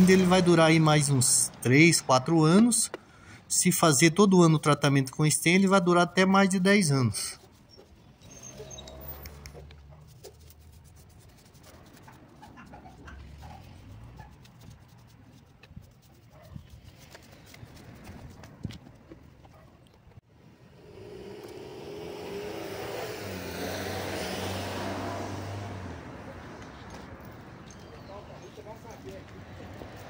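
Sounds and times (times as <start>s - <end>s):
motor vehicle passing: 0.0s - 3.4s, 7.2s - 19.8s, 20.4s - 30.0s.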